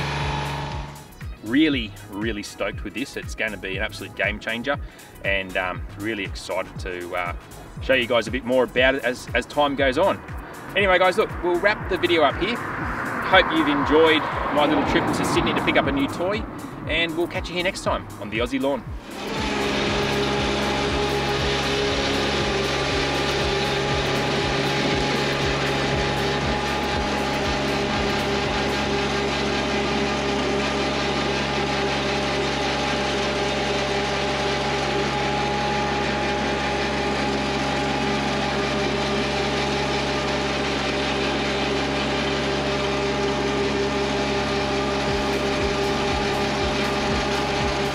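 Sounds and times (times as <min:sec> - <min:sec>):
mower diesel engine running: 0:00.0 - 0:47.9
cutting reels spinning: 0:19.0 - 0:47.9.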